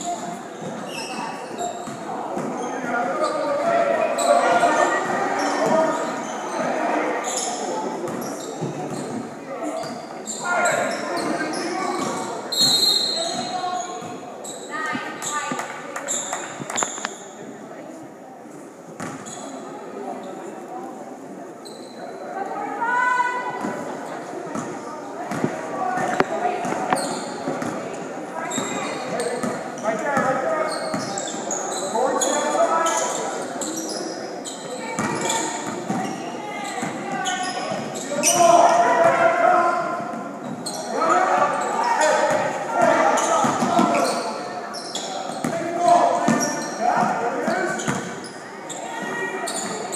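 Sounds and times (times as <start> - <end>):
sneakers squeaking on hardwood: 7.2 - 9.2, 9.8 - 17.3, 19.0 - 19.6, 25.3 - 27.7, 28.5 - 29.6, 30.6 - 38.6, 40.1 - 49.9
people calling out and shouting: 28.2 - 49.9.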